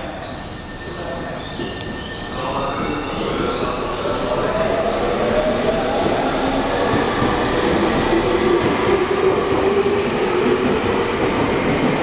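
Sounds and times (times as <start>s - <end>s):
rail noise: 0.0s - 12.0s.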